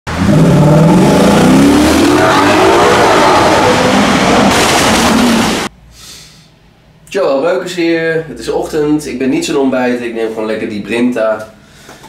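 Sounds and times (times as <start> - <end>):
car engine revving: 0.1 - 5.7.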